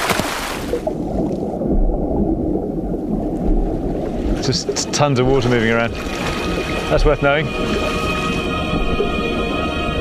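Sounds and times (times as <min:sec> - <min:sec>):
water splash: 0:00.0 - 0:09.0
underwater churning and gurgling: 0:00.0 - 0:10.0.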